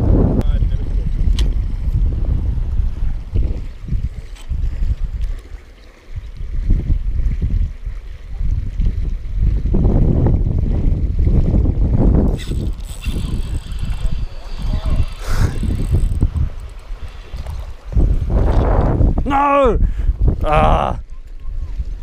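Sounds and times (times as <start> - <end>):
wind buffeting microphone: 0.0 - 22.0
fishing reel winding: 12.3 - 17.8.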